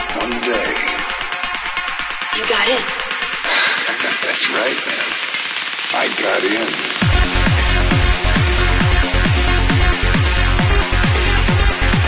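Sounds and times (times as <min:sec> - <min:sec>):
crackling noisy trance texture: 0:01.2 - 0:09.0
voice-like fragments: 0:03.5 - 0:06.8.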